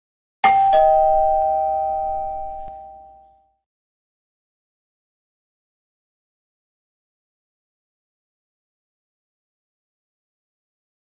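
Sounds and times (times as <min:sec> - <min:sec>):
two-tone doorbell chime: 0:00.4 - 0:03.6.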